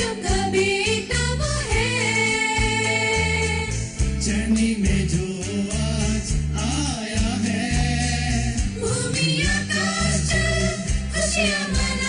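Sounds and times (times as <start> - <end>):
mixed choir singing in harmony: 0.0 - 4.0, 6.9 - 12.0.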